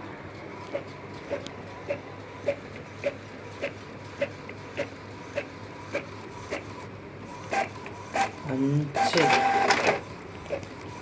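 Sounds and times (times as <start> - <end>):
printer carriage shuttling: 9.0 - 10.0.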